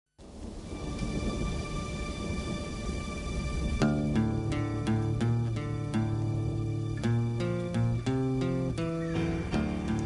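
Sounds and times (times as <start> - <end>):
low rolling thunder: 0.2 - 7.8, 8.8 - 10.0
rain: 0.2 - 10.0.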